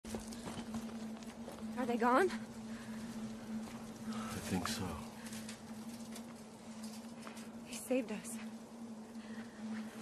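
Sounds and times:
low hum: 0.1s - 10.0s
man speaking: 4.3s - 5.2s.

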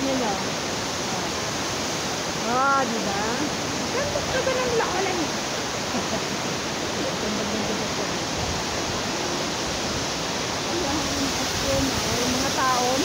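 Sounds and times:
waterfall roaring: 0.0s - 13.0s
faint voices: 2.4s - 8.7s.

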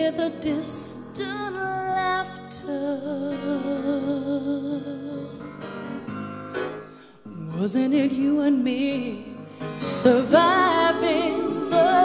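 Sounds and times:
soft piano ballad chords: 0.0s - 12.0s.

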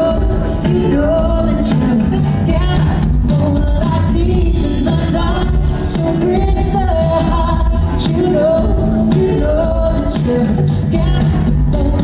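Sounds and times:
full band with electric bass: 0.0s - 12.0s.

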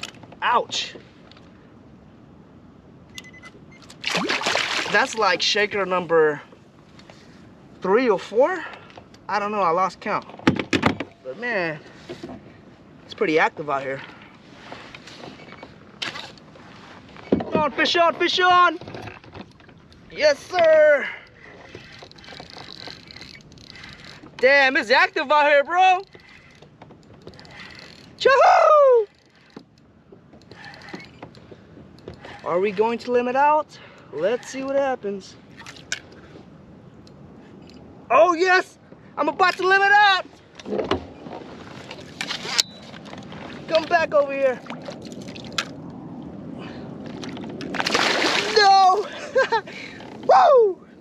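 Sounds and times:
water around kayak: 0.0s - 51.0s
wind: 0.0s - 51.0s
fish splashing at water surface: 4.0s - 5.0s, 47.1s - 48.6s.

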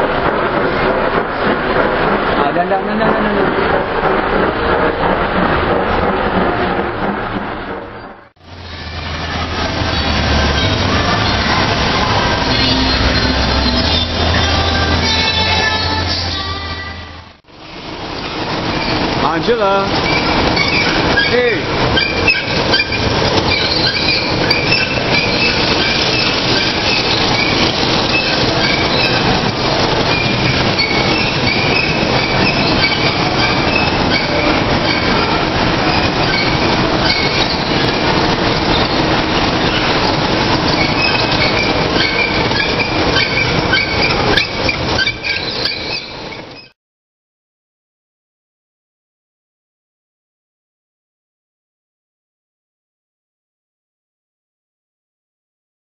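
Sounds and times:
carousel mechanical rumble: 0.0s - 46.7s.

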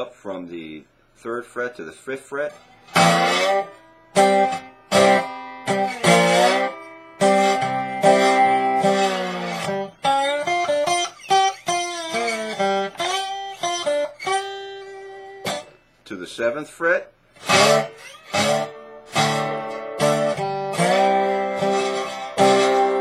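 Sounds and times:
slide acoustic guitar blues: 2.4s - 15.9s, 17.3s - 23.0s.

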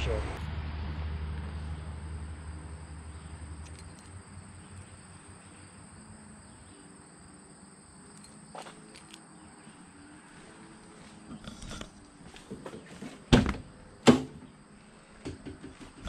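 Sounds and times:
low engine hum: 0.0s - 6.8s.

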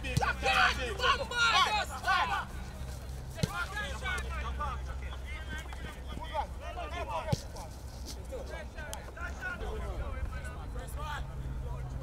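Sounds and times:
people calling out and chattering: 0.0s - 12.0s.

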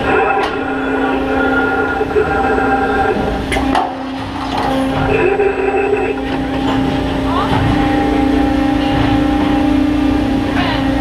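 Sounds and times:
machinery humming: 0.0s - 11.0s.

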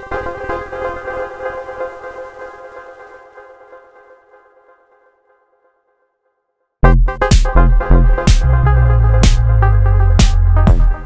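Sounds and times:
electronic beat with heavy bass: 6.8s - 11.0s.

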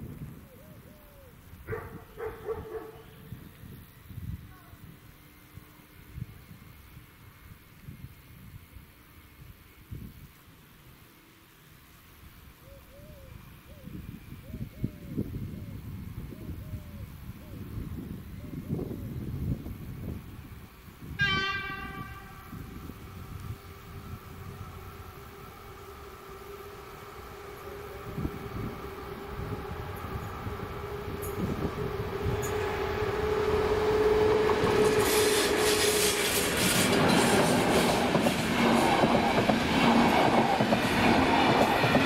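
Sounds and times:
dog barking: 1.7s - 3.0s
train horn blast: 21.0s - 37.2s.

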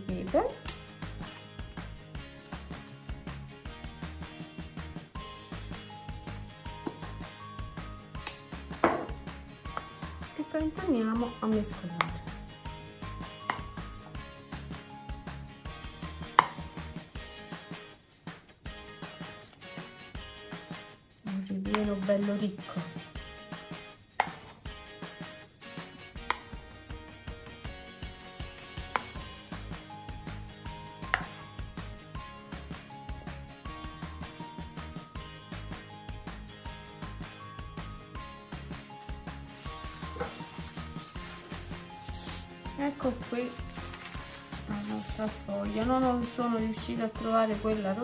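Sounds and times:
background music with steady beat: 0.0s - 48.0s
spoon stirring in a bowl: 39.0s - 42.6s
filling mixed by hand in bowl: 39.4s - 46.0s.

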